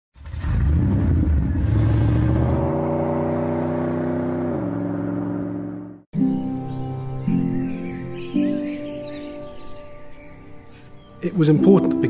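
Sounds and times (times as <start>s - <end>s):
car engine revving: 0.2s - 6.1s.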